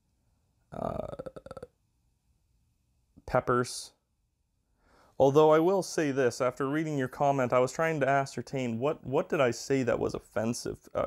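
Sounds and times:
man saying uh: 0.8 - 1.7, 8.2 - 11.0.

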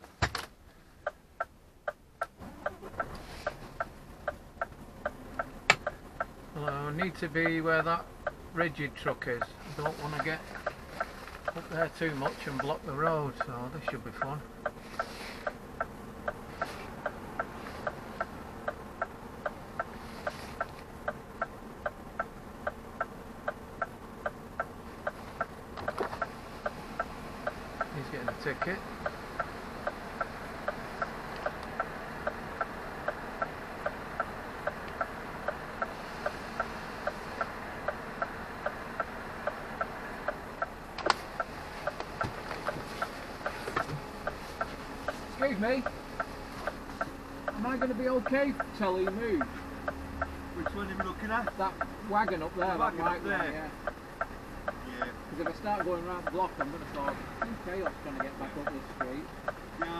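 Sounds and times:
diesel engine idling: 0.0 - 59.9
indicator flasher ticking: 1.0 - 2.8, 3.8 - 10.8, 11.4 - 14.8, 20.6 - 59.9.

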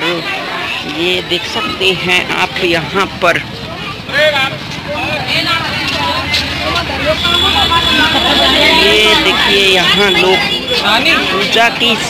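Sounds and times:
crowd voices talking: 0.0 - 12.0.

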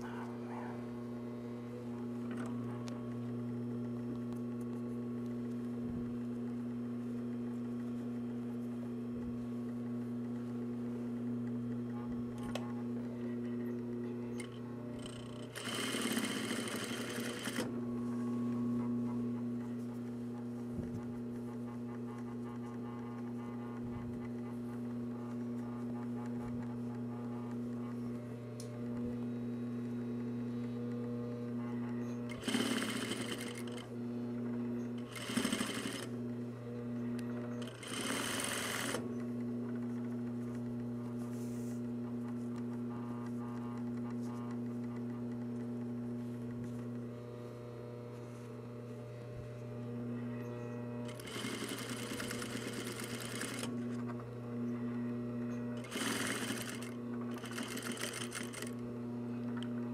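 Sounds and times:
sewing machine motor hum: 0.0 - 59.9
sewing machine stitching bursts: 15.0 - 17.7, 32.3 - 33.9, 35.0 - 36.1, 37.6 - 39.0, 51.1 - 53.7, 55.8 - 58.8.

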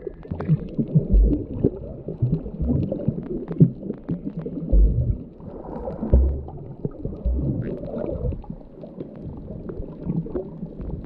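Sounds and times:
churning water underwater: 0.0 - 11.0.

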